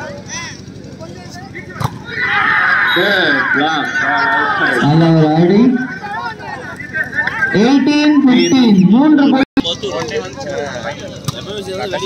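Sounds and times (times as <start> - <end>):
people calling out: 1.5 - 9.4.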